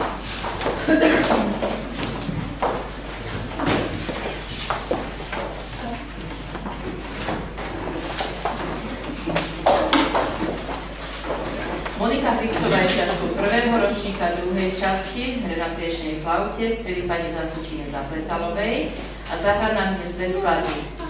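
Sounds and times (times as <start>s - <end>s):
knocks and shuffling: 0.0s - 13.3s
murmured voices: 11.4s - 14.5s.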